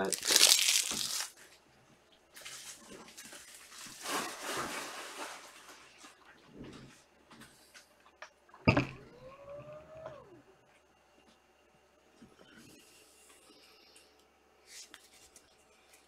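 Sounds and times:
rustling and handling noise: 0.0s - 1.6s, 2.3s - 7.1s, 12.2s - 16.0s.

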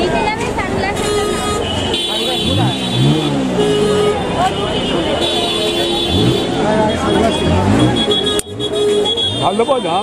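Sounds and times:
people talking: 0.0s - 10.0s
road traffic: 0.0s - 10.0s
held horn tone: 1.0s - 10.0s.

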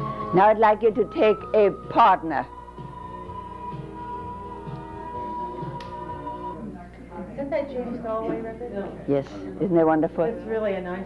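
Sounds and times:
flute music: 0.0s - 6.6s.

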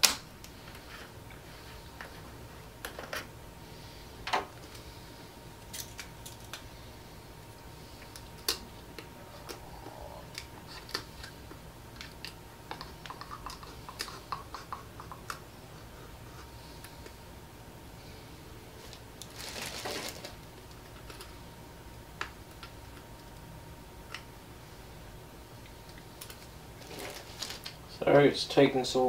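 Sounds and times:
faint high hum: 0.0s - 29.0s.

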